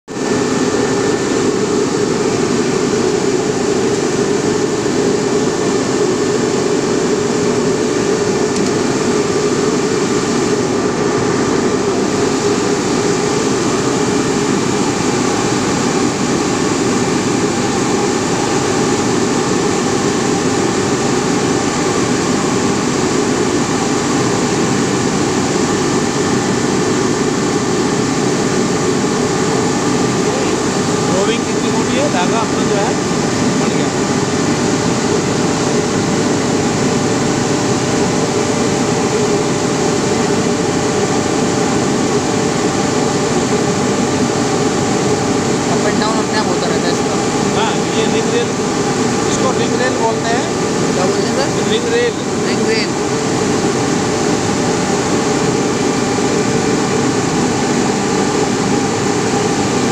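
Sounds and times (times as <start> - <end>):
faint steady whines: 0.1 - 59.9
spinning machine hum and whir: 0.1 - 59.9.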